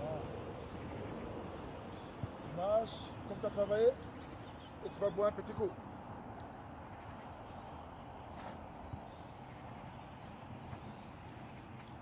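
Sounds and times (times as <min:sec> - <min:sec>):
outdoor background hum: 0:00.0 - 0:12.0.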